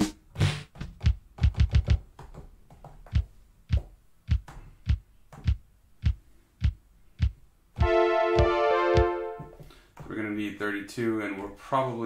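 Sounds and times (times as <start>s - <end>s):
drum machine thumps: 0.0s - 10.1s.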